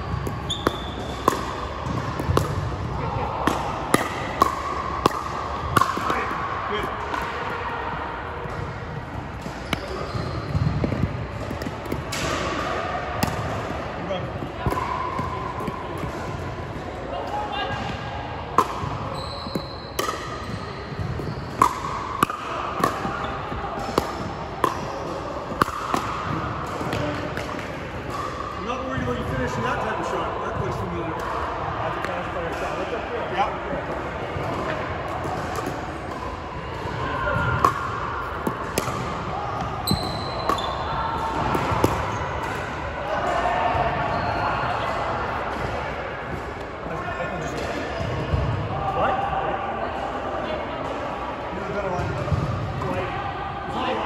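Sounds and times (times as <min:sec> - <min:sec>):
murmur of voices: 0:00.0 - 0:54.0
paddles hitting plastic ball: 0:00.1 - 0:06.4, 0:20.0 - 0:28.3, 0:33.9 - 0:42.7.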